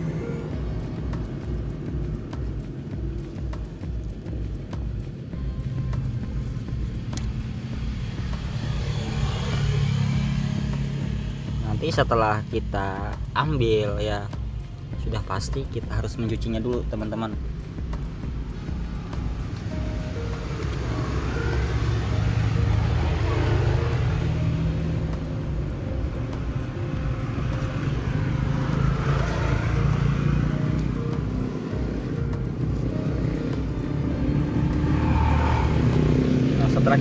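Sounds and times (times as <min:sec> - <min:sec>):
road traffic passing: 0:00.0 - 0:37.0.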